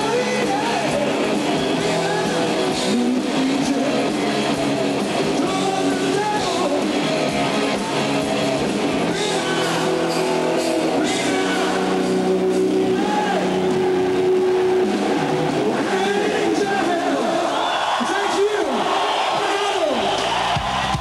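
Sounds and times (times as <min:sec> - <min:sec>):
rock band holding a chord: 0:00.0 - 0:17.5
crowd shouting and cheering: 0:00.0 - 0:21.0.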